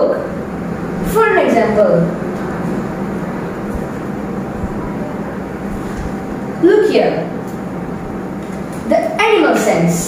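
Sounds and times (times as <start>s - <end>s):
low hum: 0.0s - 8.8s.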